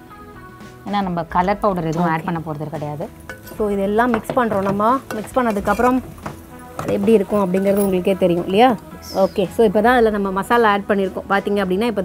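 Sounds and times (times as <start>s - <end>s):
woman talking: 0.9s - 6.0s, 6.8s - 12.0s
sizzling in hot pan: 2.0s - 9.8s
ladle scraping metal pot: 3.2s - 8.5s.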